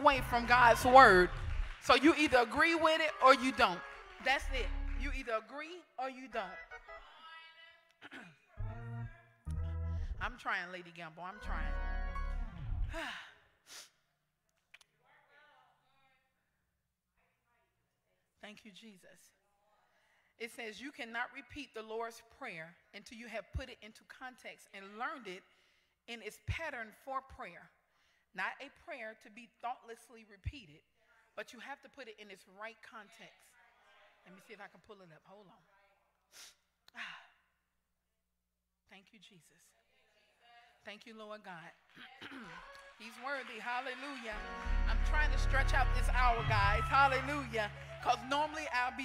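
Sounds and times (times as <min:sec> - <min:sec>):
woman's voice: 0:00.0 - 0:07.2, 0:10.2 - 0:12.1, 0:40.9 - 0:49.0.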